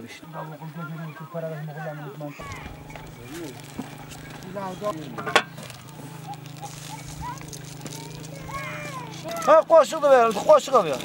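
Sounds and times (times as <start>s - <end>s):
metal cookware clinking: 2.4s - 5.8s
steady low hum: 2.4s - 9.4s.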